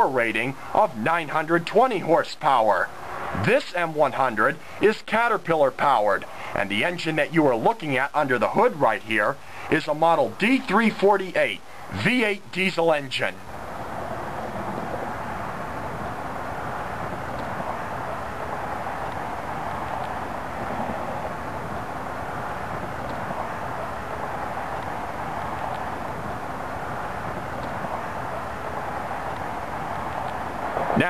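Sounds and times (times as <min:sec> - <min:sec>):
outdoor background rush: 0:00.0 - 0:31.0.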